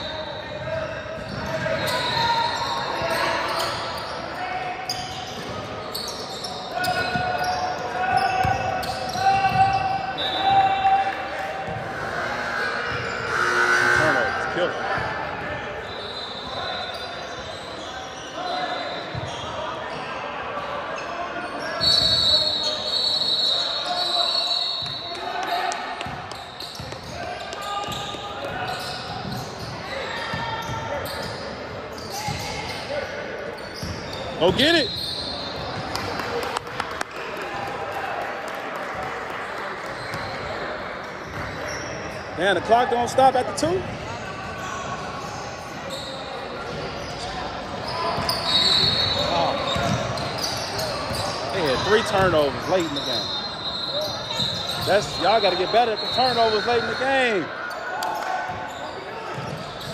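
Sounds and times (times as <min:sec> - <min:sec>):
voices and shouts: 0:00.0 - 0:05.3, 0:06.4 - 0:26.0
sneakers squeaking: 0:00.0 - 0:36.2, 0:39.8 - 0:59.9.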